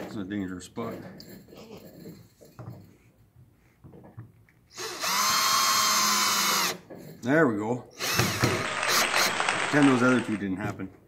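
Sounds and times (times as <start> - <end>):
cordless drill motor whine: 4.8 - 6.8, 8.0 - 10.4.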